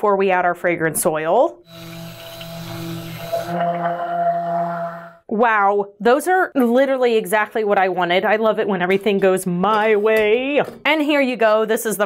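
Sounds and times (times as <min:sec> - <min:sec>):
stick blender motor hum: 0:01.7 - 0:05.2.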